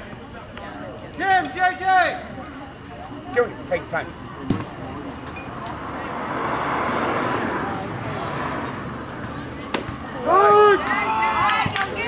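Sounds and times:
vehicle passing: 0:04.7 - 0:10.2
people shouting: 0:10.2 - 0:12.0.

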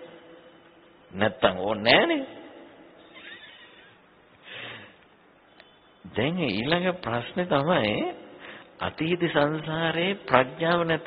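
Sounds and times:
man speaking: 0:01.1 - 0:02.7.

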